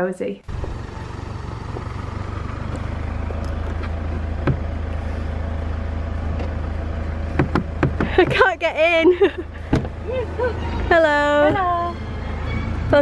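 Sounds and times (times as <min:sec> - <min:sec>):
car engine idling: 0:00.4 - 0:13.0.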